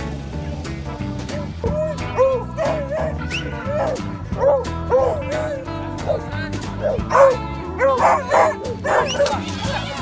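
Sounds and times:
background music: 0.0 - 10.0
dogs yelping: 1.4 - 10.0.

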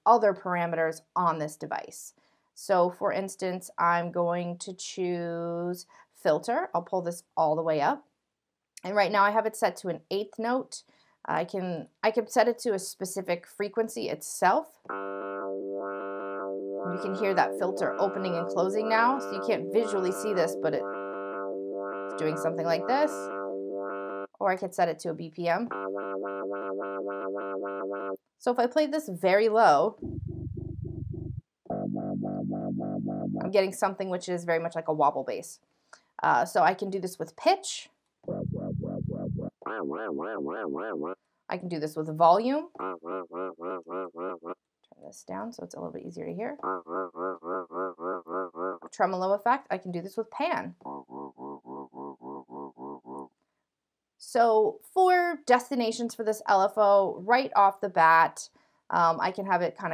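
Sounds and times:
pulsing synth bass note: 14.9 - 24.4, 25.7 - 28.2, 30.0 - 33.5, 38.3 - 41.2, 42.7 - 44.6, 46.6 - 49.0, 50.8 - 53.3.

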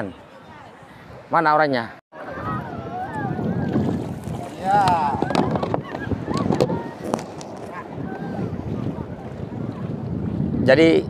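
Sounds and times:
shallow surf washing: 0.0 - 11.0
wind rumbling on microphone: 2.2 - 11.0.

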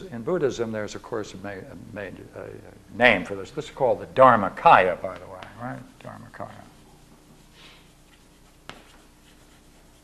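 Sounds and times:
chalk writing on blackboard: 7.4 - 10.0.

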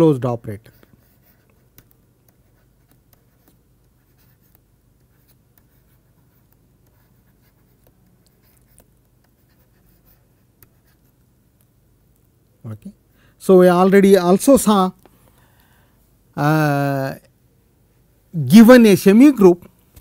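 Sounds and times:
low steady hum: 0.0 - 20.0
stylus tapping on pen tablet: 0.8 - 11.8.

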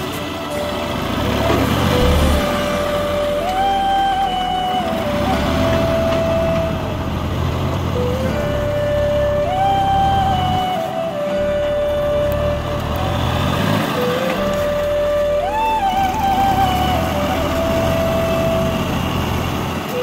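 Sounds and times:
slow background music: 0.0 - 20.0
tractor diesel engine running: 0.0 - 20.0.

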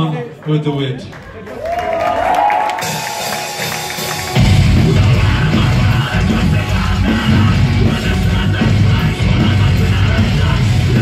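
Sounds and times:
crowd noise: 0.0 - 11.0
metal band playing loud: 2.7 - 11.0.

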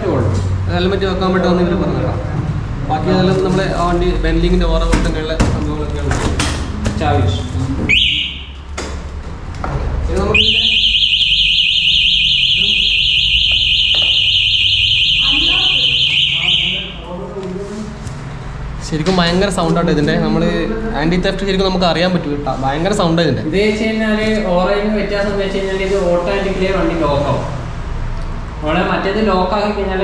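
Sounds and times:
alarm beep: 7.9 - 8.6, 10.3 - 17.0
warbling alarm tone: 10.3 - 17.0.

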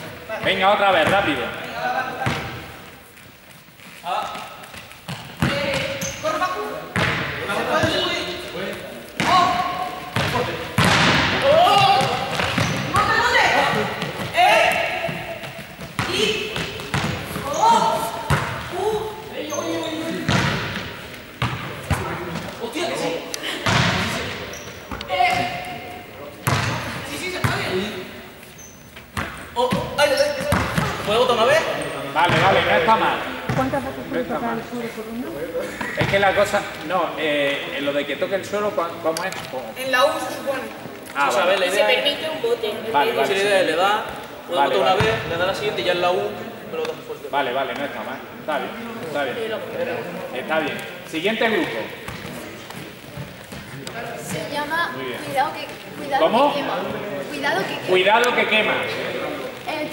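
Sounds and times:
ball hits and bounces: 5.1 - 6.2, 6.9 - 8.1, 9.2 - 17.6, 18.2 - 18.7, 20.2 - 22.6, 23.6 - 25.6, 26.4 - 27.7, 29.1 - 31.6, 32.2 - 32.8.

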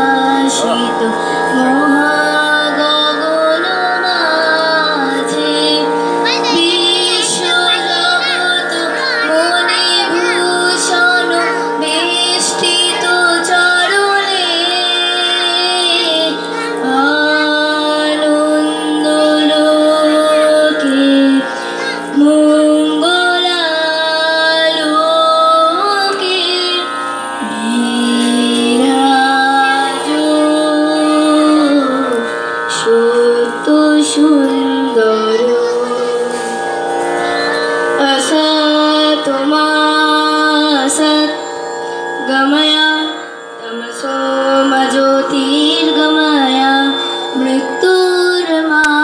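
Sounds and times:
instrumental drone: 0.0 - 49.0
person singing ornamented notes: 0.0 - 49.0.

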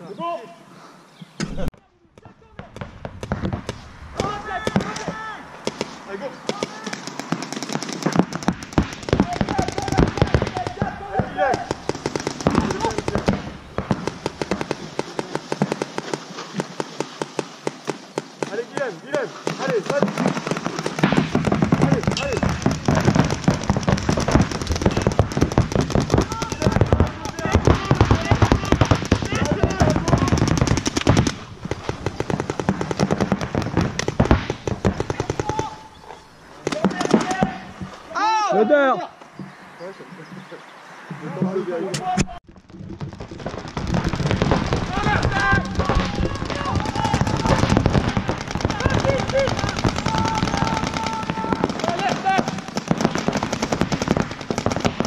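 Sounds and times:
paintball guns firing: 1.5 - 38.0, 42.5 - 55.0.

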